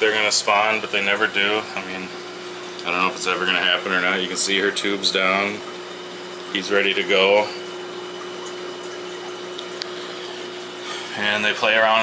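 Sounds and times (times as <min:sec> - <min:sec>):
aquarium pump hum: 0:00.0 - 0:12.0.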